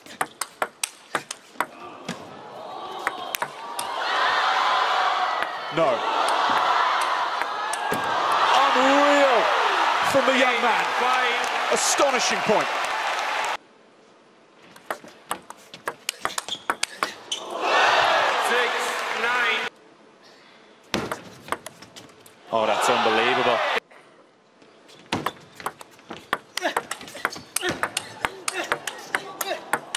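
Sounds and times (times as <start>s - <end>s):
crowd noise: 1.7s - 13.6s, 17.1s - 19.7s.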